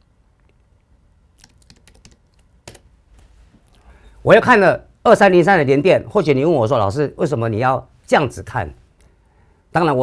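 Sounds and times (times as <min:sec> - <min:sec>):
faint keyboard typing: 0:01.4 - 0:02.9.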